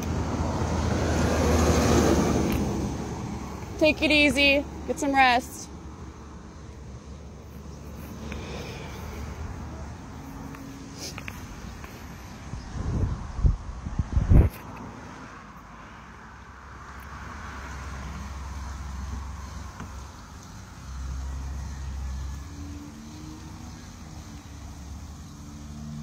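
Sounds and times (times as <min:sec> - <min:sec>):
wind gusting on microphone: 0:11.4 - 0:15.3.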